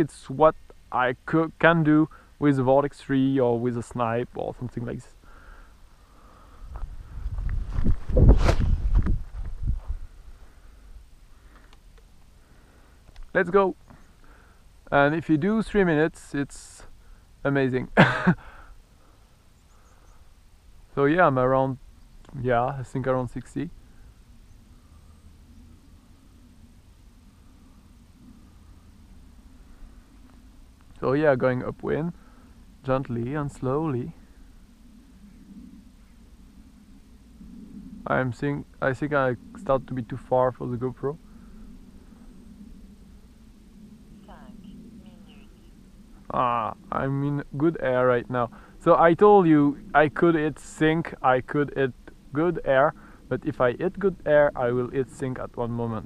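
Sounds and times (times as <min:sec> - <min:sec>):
faint low background hum: 0:00.0 - 0:56.0
low hiss: 0:00.0 - 0:56.0
wind buffeting: 0:00.0 - 0:56.0.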